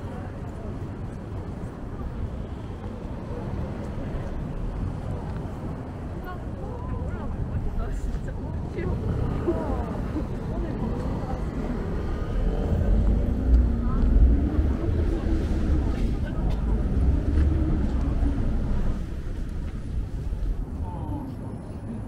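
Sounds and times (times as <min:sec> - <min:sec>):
passers-by talking: 0:00.0 - 0:22.0
traffic rumble: 0:00.0 - 0:22.0.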